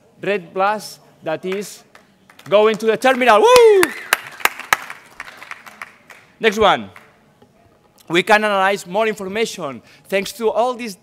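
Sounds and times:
audience applauding: 2.3s - 6.3s.

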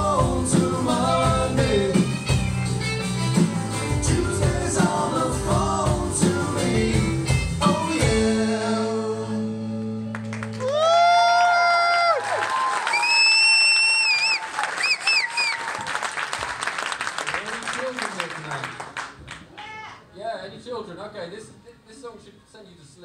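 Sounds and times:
live rock band playing: 0.0s - 10.2s
crowd cheering: 10.1s - 18.4s
audience applause: 10.1s - 19.7s
shrill whistles: 12.9s - 15.9s.

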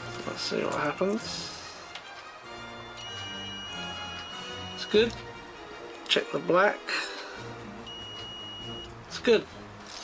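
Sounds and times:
multimeter high beep: 3.0s - 4.9s, 7.9s - 8.9s.

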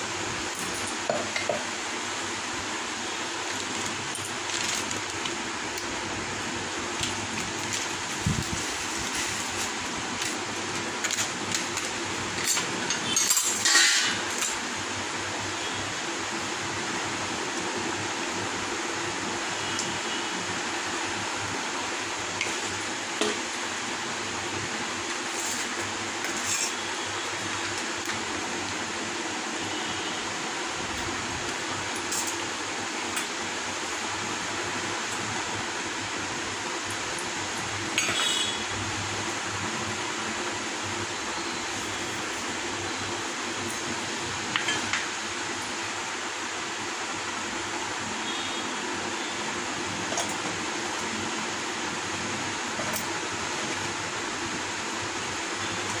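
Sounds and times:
kitchenware clinking on steel plate: 12.4s - 14.2s.

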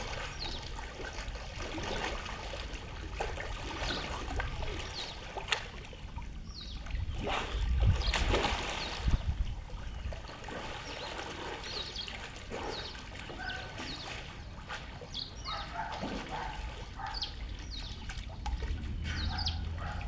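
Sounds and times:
pool water lapping: 0.0s - 20.0s
birds chirping: 6.5s - 20.0s.

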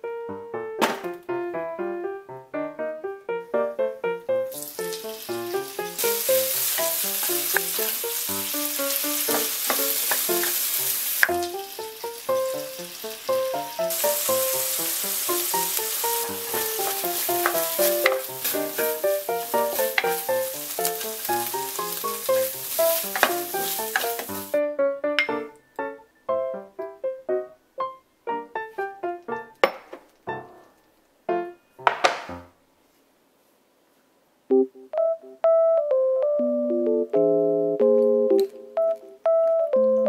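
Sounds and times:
light background melody: 0.0s - 32.4s, 34.5s - 40.0s
food sizzling in frying pan: 4.5s - 24.6s
chopsticks clicking against pan: 6.8s - 8.0s, 9.3s - 10.6s, 16.6s - 19.1s, 19.7s - 22.0s, 22.8s - 24.3s.

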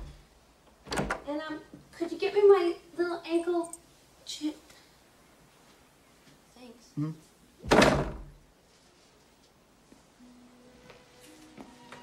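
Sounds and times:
door thudding shut: 0.8s - 1.3s, 7.6s - 8.4s.

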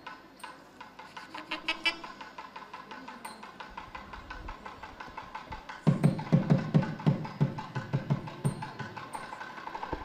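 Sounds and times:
ringing percussion ticks: 0.0s - 10.0s.

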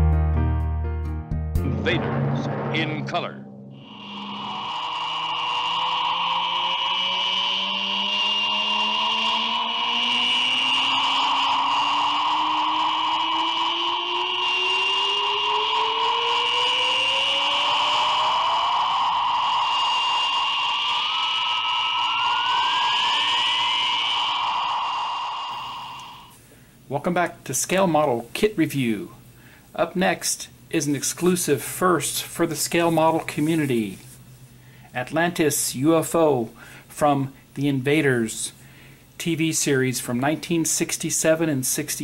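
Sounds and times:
flying saucer sound effect: 1.6s - 26.4s.

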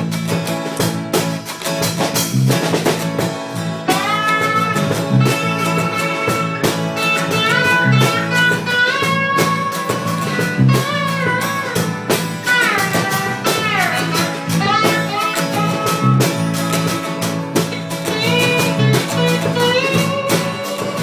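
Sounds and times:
electric guitar lead line: 0.0s - 21.0s
low repeating guitar pattern: 0.0s - 21.0s
sharp regular drum hits: 0.0s - 21.0s.

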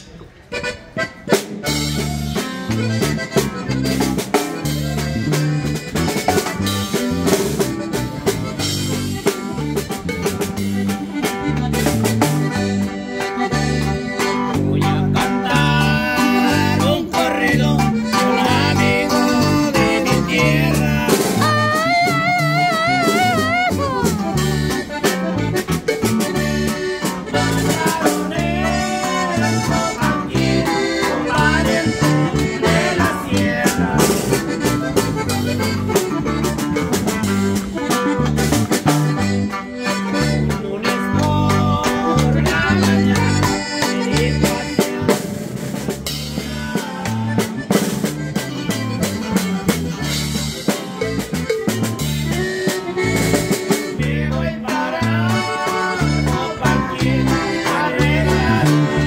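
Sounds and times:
electric bass: 0.0s - 59.0s
twelve-string acoustic guitar: 0.0s - 59.0s.

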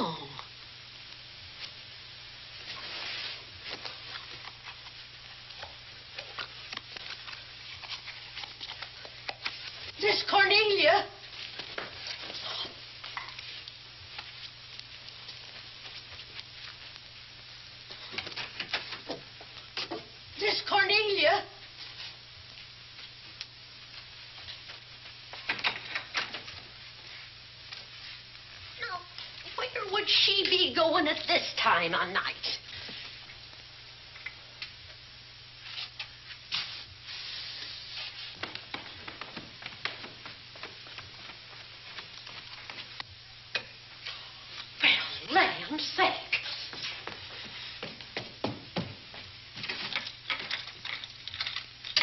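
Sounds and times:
old film soundtrack crackle and hiss: 0.0s - 52.0s.

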